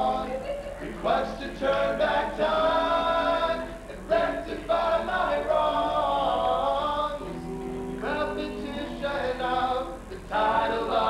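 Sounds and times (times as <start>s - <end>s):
male a cappella harmony singing: 0.0s - 11.0s.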